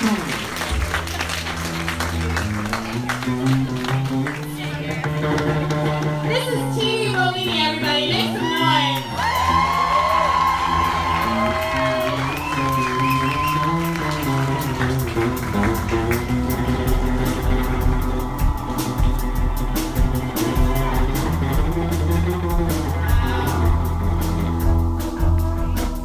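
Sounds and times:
audience cheering and whooping: 0.0s - 4.4s, 8.0s - 25.8s
live band holding a note: 0.0s - 26.0s
drums and bass rock groove: 0.7s - 26.0s.

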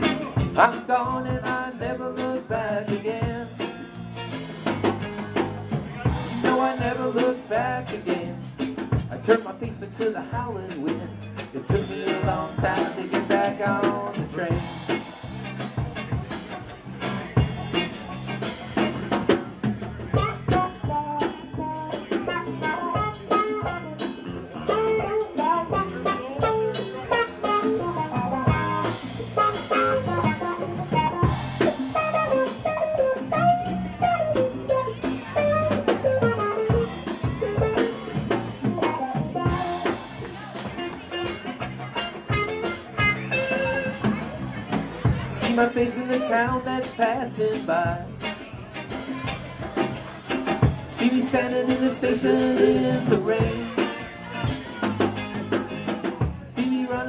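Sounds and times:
drum beat: 0.0s - 56.8s
electric guitars: 0.0s - 57.0s.

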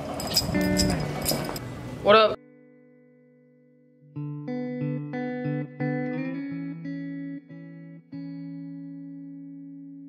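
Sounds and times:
guitar picking notes and chords: 0.3s - 10.0s.

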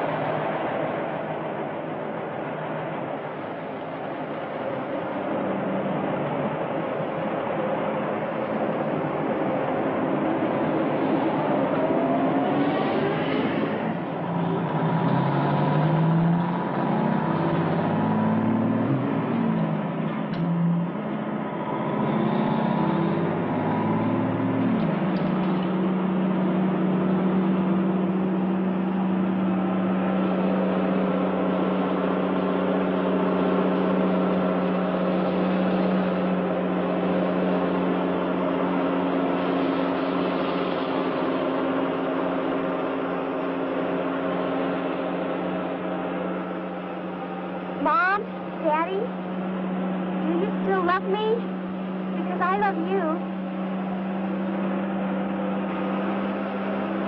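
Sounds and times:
vehicle engine humming: 0.0s - 57.0s.

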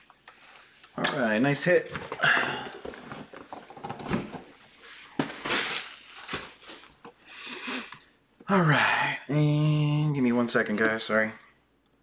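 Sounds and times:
cardboard boxes rustling and scraping: 1.8s - 6.9s.

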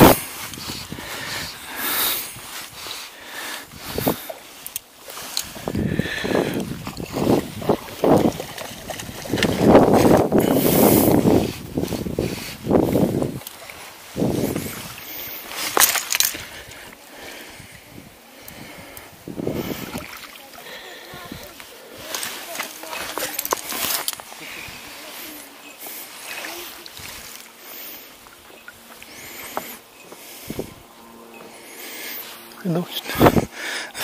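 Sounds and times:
fishing gear knocks and rustles: 3.9s - 10.8s, 14.4s - 16.8s, 21.3s - 25.6s
landing net splashing in water: 15.6s - 16.4s.

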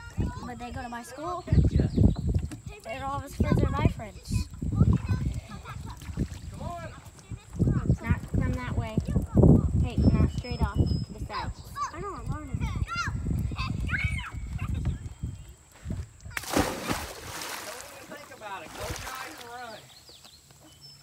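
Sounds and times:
wind gust on microphone: 0.0s - 17.5s.

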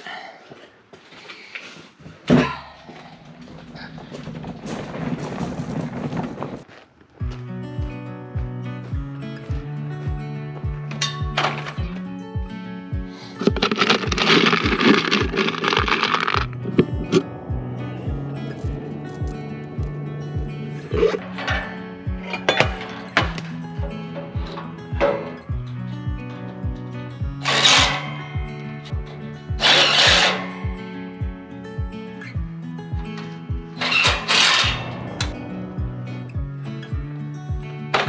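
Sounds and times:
wheelbarrow rolling over gravel: 2.8s - 7.3s, 13.2s - 17.3s, 18.1s - 28.2s, 29.6s - 30.7s
background music with steady beat: 7.2s - 38.0s.

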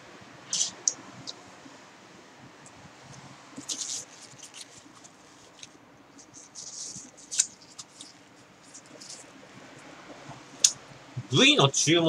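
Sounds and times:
faint crackles and clicks: 2.6s - 10.8s.

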